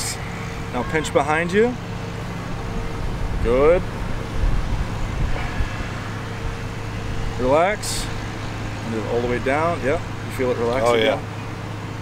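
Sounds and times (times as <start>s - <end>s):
low buffeting: 0.0s - 12.0s
low outdoor rumble: 0.0s - 12.0s.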